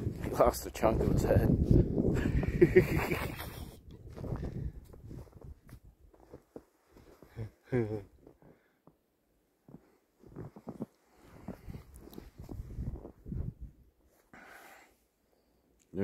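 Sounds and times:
person laughing quietly: 0:02.1 - 0:03.9, 0:07.2 - 0:08.3.

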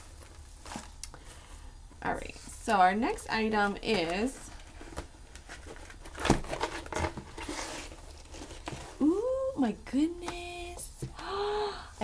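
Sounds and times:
packaging crinkling and tearing: 0:04.8 - 0:09.0.

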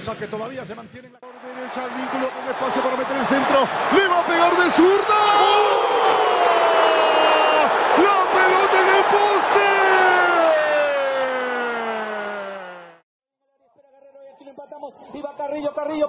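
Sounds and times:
stadium crowd noise: 0:00.0 - 0:13.0
commentator's drawn-out shout: 0:01.4 - 0:13.0.

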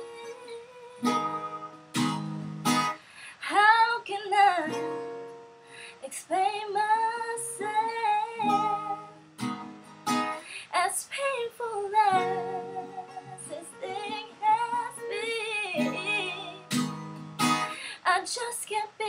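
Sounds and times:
woman singing: 0:00.0 - 0:01.6, 0:03.4 - 0:05.1, 0:06.0 - 0:09.2, 0:10.6 - 0:16.8, 0:17.9 - 0:19.0
strummed acoustic guitar: 0:00.0 - 0:03.2, 0:04.3 - 0:06.0, 0:07.3 - 0:18.0.

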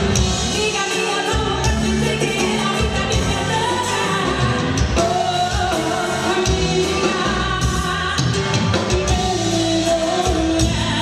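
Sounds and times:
live band playing: 0:00.0 - 0:11.0
woman singing: 0:00.1 - 0:11.0.

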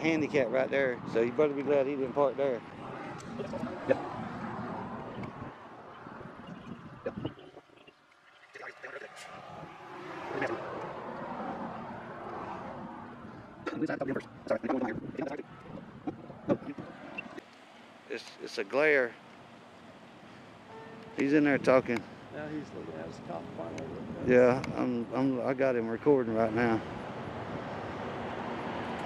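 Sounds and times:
roadside vehicle noise: 0:00.0 - 0:29.0.

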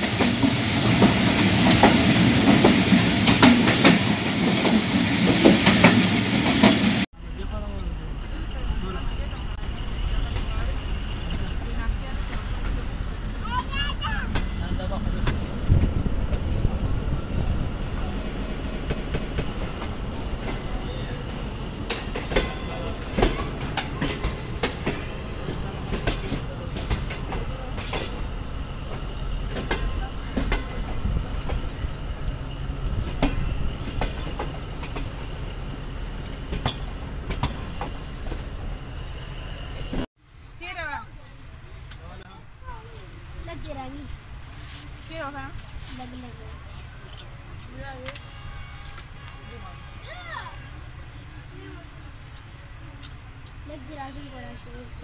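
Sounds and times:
train low rumble: 0:00.0 - 0:55.0
wheels clacking over rail joints: 0:18.0 - 0:38.9.

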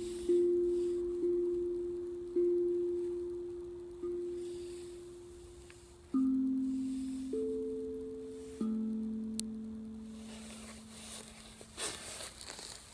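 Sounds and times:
steel tongue drum ringing notes: 0:00.0 - 0:12.5.

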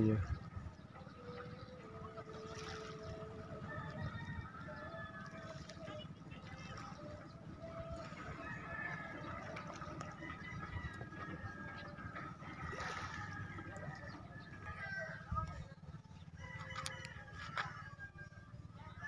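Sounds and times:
rooster crowing: 0:03.6 - 0:05.7, 0:16.4 - 0:19.0.

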